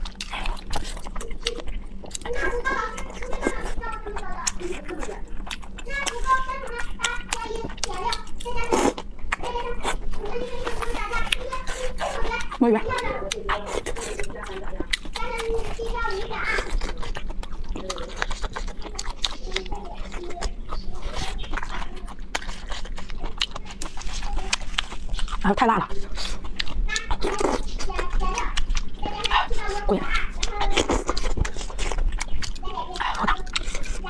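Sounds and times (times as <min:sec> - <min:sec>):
chewing and slurping noodles: 0:00.0 - 0:34.0
wet mouth clicks: 0:16.5 - 0:34.0.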